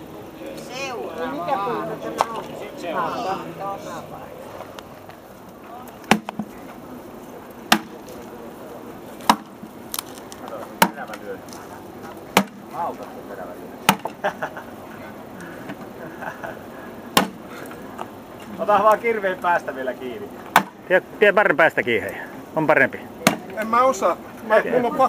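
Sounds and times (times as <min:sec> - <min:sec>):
axe chopping firewood logs: 0:06.0 - 0:06.6, 0:07.7 - 0:08.0, 0:09.2 - 0:11.2, 0:12.3 - 0:12.7, 0:13.8 - 0:14.2, 0:17.1 - 0:17.6, 0:20.5 - 0:20.8, 0:23.2 - 0:23.6.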